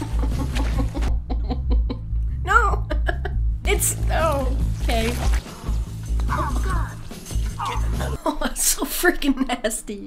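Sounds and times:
person laughing: 0:00.0 - 0:03.4.

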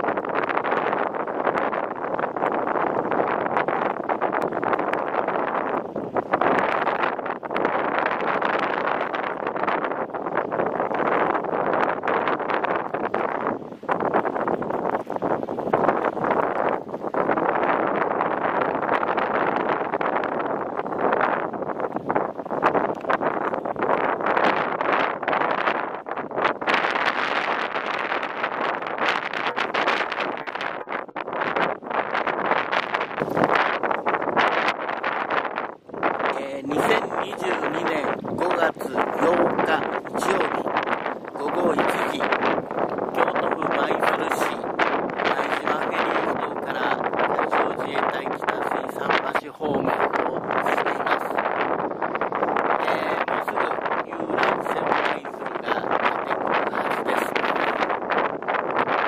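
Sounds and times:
wind gusting across microphone: 0:00.0 - 0:59.0.

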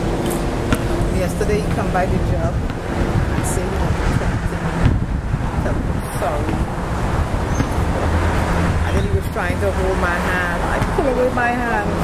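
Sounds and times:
low engine drone: 0:00.0 - 0:12.0
road traffic rumble: 0:00.0 - 0:12.0.

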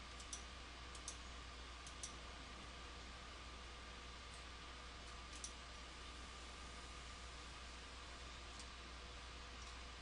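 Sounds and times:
microphone hiss and hum: 0:00.0 - 0:10.0.

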